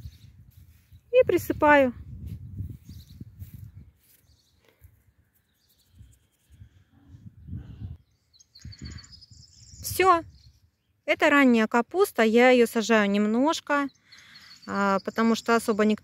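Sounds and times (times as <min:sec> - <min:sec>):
bird trill: 0:13.8 - 0:16.0.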